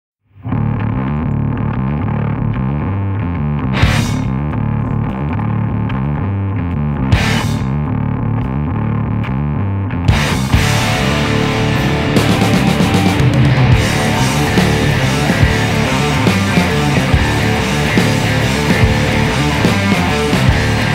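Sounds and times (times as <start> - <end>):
distorted guitar riff: 0.3 - 20.9
cymbal crashes: 3.7 - 4.5.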